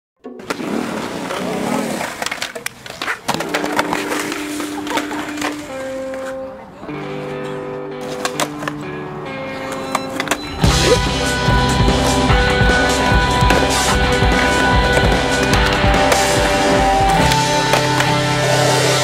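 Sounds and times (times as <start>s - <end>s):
skateboard wheels rolling on concrete: 0.3s - 19.0s
skateboard clacks: 0.4s - 6.5s, 8.0s - 8.8s, 12.4s - 18.5s
music with held notes: 3.4s - 19.0s.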